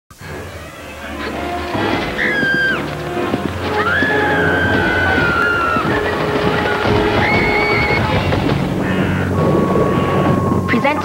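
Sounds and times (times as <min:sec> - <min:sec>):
music playing: 0:00.1 - 0:11.0.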